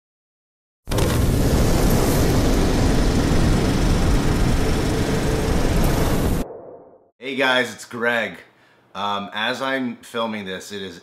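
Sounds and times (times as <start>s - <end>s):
deep rumbling: 1.0s - 7.1s.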